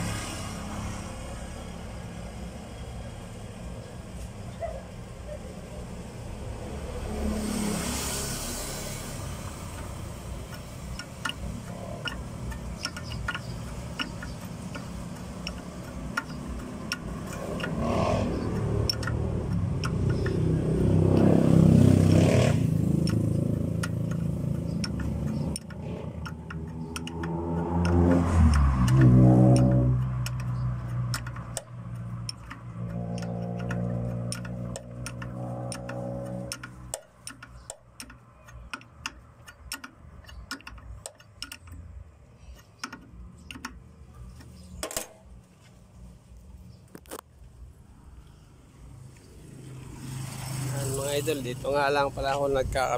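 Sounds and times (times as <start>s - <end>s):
vehicle engines rising and falling: 0.0s - 52.9s.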